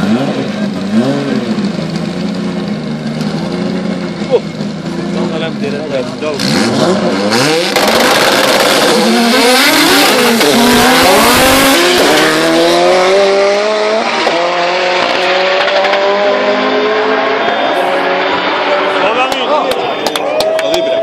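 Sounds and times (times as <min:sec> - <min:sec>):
race car engines accelerating: 0:00.0 - 0:21.0.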